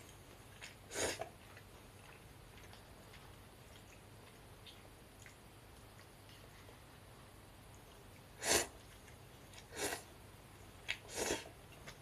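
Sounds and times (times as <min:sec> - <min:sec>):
noodle slurp: 0:10.9 - 0:11.5.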